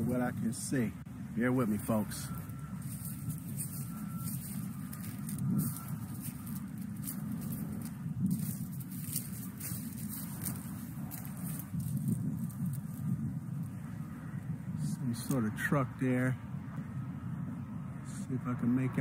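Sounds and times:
leaves and branches brushing phone: 0.0s - 13.8s
steady low rumble: 0.0s - 19.0s.

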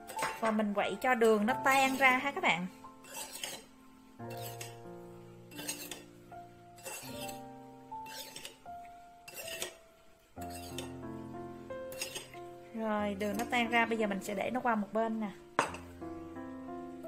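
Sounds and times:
soft background music: 0.0s - 17.0s.

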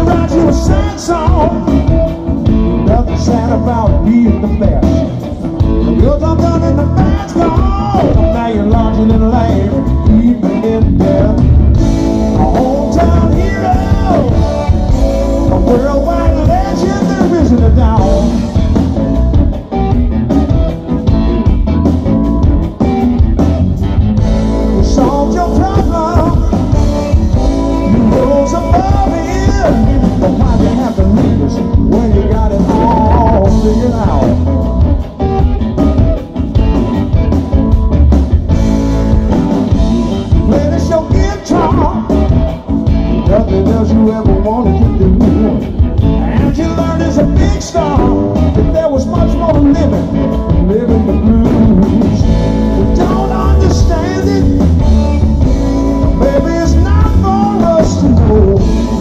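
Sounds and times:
electric guitar: 0.0s - 59.0s
live blues-rock band playing: 0.0s - 59.0s.

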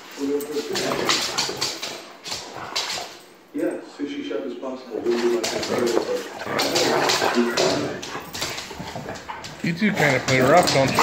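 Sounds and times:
dogs play-fighting: 0.0s - 3.6s, 5.0s - 11.0s
dogs vocalizing: 5.0s - 11.0s.

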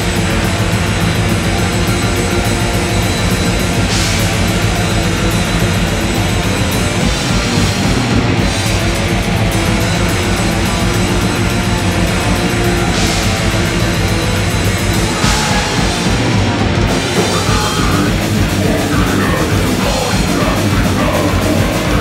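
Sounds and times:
bass guitar: 0.0s - 22.0s
distorted electric guitars: 0.0s - 22.0s
drum kit: 0.0s - 22.0s.

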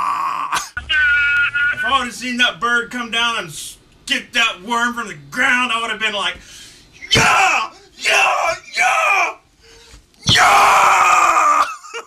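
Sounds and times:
man yelling: 7.0s - 9.4s, 10.2s - 11.8s.

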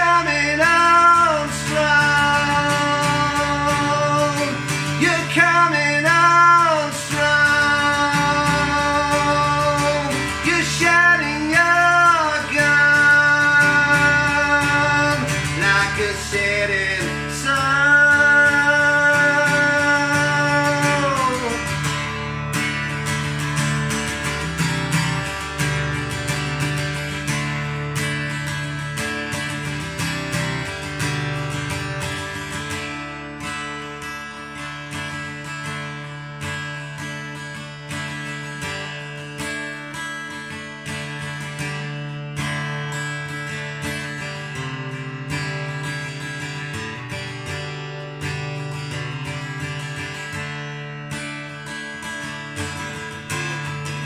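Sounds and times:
acoustic guitar strummed chords: 0.0s - 54.0s.

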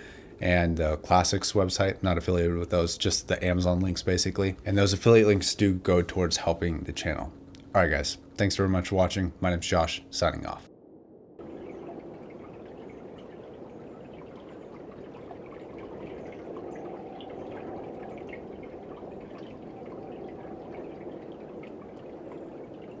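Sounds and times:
faint water drips: 11.4s - 23.0s
water lapping at rocky edge: 11.4s - 23.0s.

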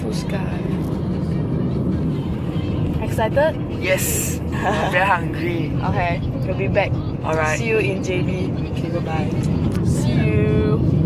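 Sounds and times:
car engine and road noise from cabin: 0.0s - 11.0s.

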